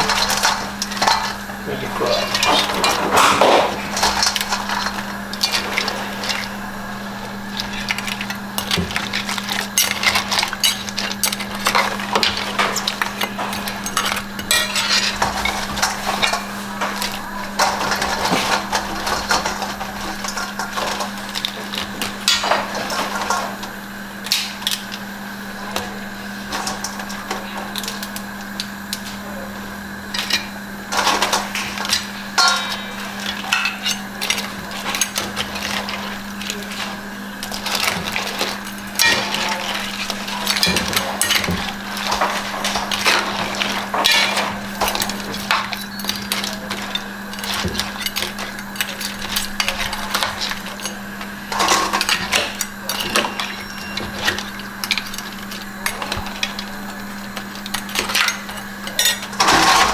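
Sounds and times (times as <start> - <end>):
steady low hum: 0.0 - 59.9.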